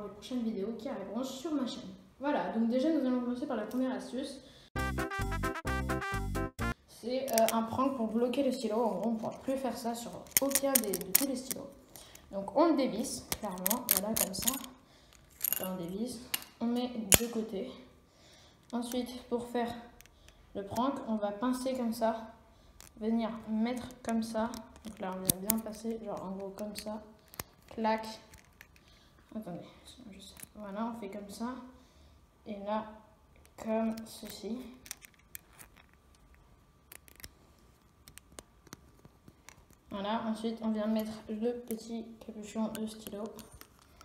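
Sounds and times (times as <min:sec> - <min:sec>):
plastic pen click: 0:23.8 - 0:25.8.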